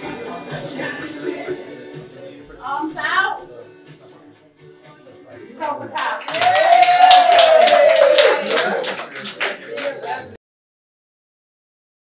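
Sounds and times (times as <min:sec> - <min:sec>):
small group clapping: 0:05.6 - 0:10.4.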